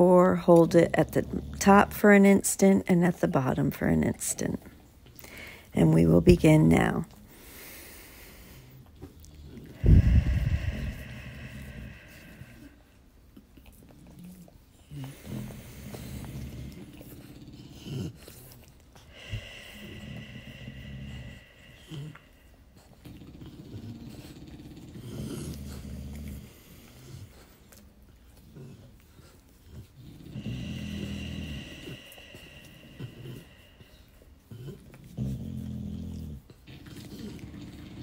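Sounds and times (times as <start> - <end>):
dogs breathing and snoring: 0.0 - 38.0
person breathing slowly: 5.2 - 5.7, 9.6 - 13.1, 19.0 - 23.0, 30.4 - 34.4.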